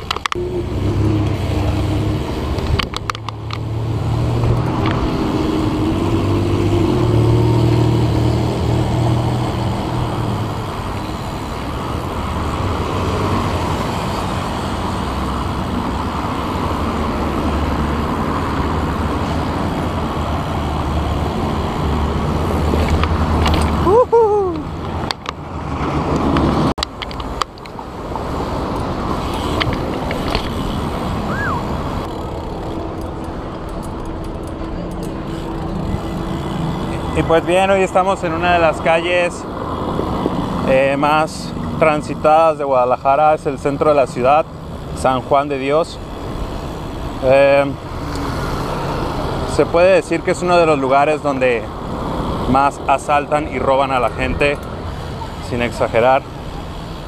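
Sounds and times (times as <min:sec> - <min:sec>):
street traffic rumble: 0:00.0 - 0:57.0.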